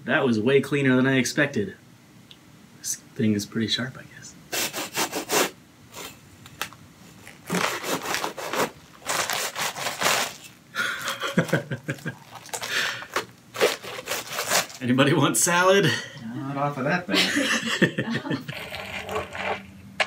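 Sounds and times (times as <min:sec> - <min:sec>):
lettuce leaves crunching and tearing: 0:07.2 - 0:14.8.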